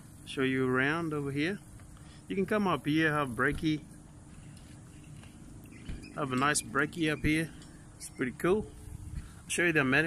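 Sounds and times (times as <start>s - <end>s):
steady low rumble: 0.0s - 10.0s
faint bird calls: 4.4s - 9.4s.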